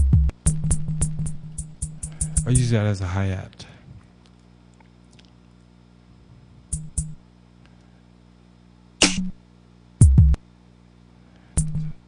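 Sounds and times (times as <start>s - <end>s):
bright noisy drum hit: 9.0s - 9.4s
deep kick drum hit: 10.0s - 10.4s.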